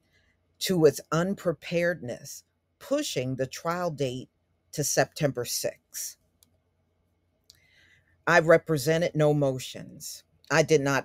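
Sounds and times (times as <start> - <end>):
person speaking: 0.6 - 6.2, 8.3 - 11.0.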